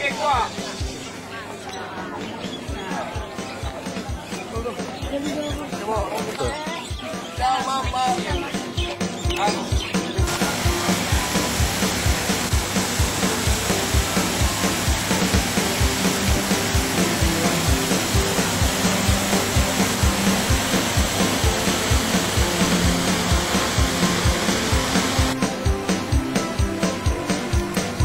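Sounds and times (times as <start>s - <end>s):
music with quick beat: 2.2s - 28.0s
water rushing over weir: 9.5s - 28.0s.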